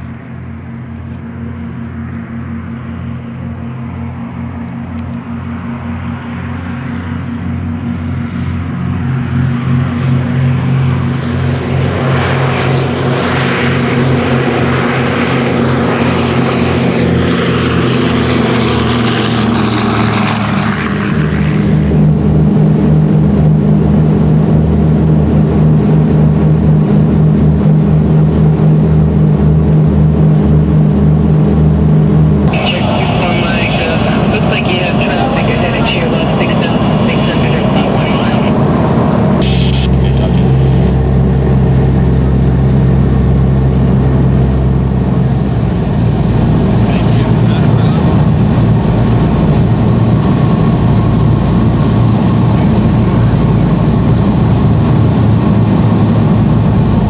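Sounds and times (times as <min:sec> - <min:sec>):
deep engine drone in cabin: 0:00.0 - 0:57.0
piston aircraft engines: 0:00.0 - 0:57.0
high-pitched noise: 0:39.4 - 0:40.9.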